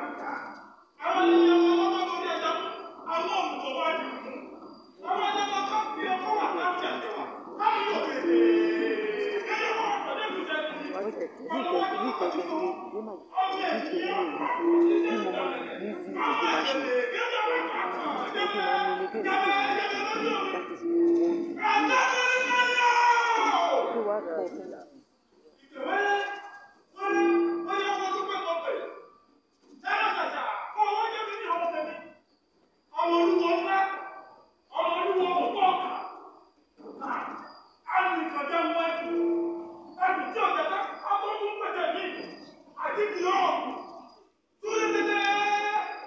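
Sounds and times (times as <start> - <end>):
person speaking: 0.0 - 22.6
actors' voices echoing: 0.0 - 24.5, 32.9 - 44.0, 44.6 - 46.0.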